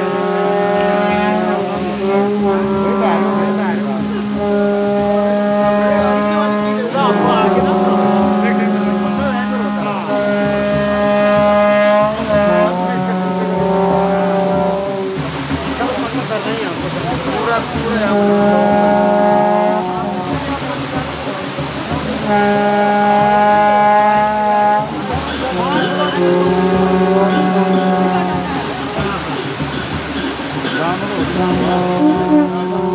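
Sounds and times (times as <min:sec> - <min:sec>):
crowd voices: 0:00.0 - 0:32.9
horn blowing long notes: 0:00.0 - 0:32.9
wind instrument drone and melody: 0:00.0 - 0:32.9.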